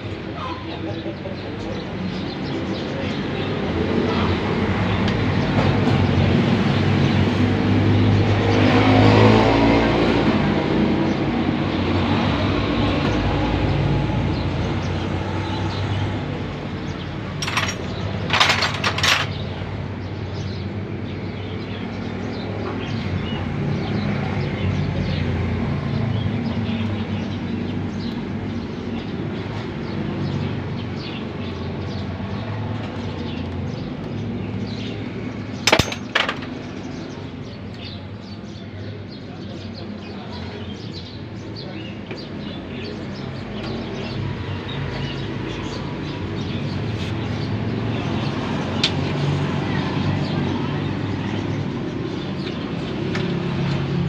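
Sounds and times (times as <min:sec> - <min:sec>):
street traffic noise: 0:00.0 - 0:54.0.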